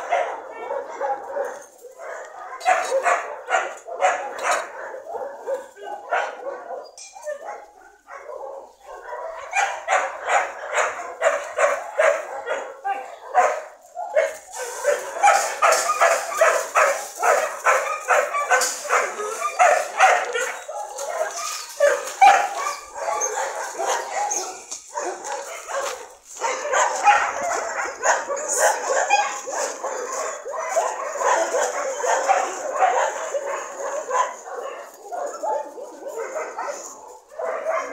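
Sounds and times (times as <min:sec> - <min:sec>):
dogs barking and yipping: 0:00.0 - 0:37.9.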